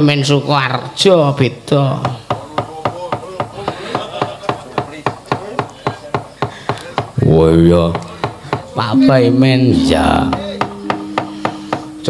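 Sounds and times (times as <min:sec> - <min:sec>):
wooden mallet rapidly knocking: 0:10.3 - 0:11.9.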